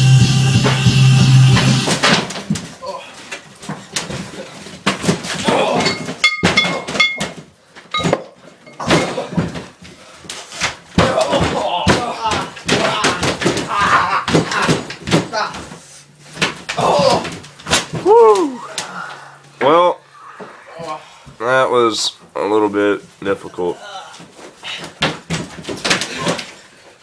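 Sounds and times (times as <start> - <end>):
rock music: 0.0 - 1.9
thuds and slams on padded floor: 0.6 - 2.8, 3.6 - 8.2, 10.6 - 18.2, 24.7 - 26.6.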